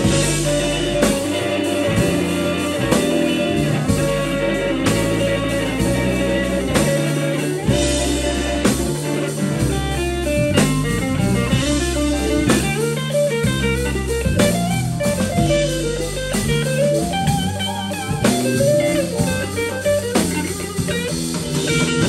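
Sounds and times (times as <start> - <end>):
electric guitar lead lines: 0.0 - 22.0
steady drum beat: 0.0 - 22.0
walking bass line: 0.0 - 22.0.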